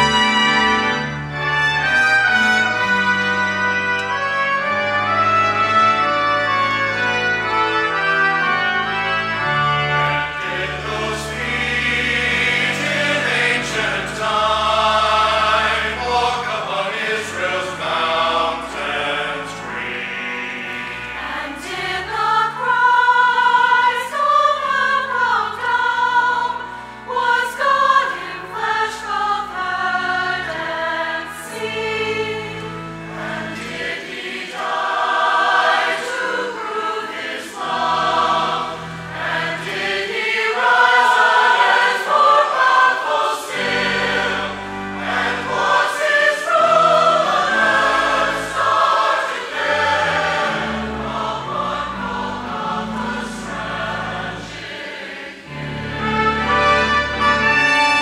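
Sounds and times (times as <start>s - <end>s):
mixed choir singing in parts: 10.1s - 58.0s.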